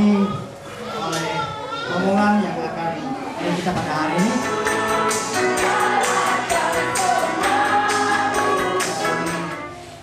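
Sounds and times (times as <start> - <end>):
congregation singing: 3.8 - 10.0
instrumental backing with steady beat: 4.2 - 9.8.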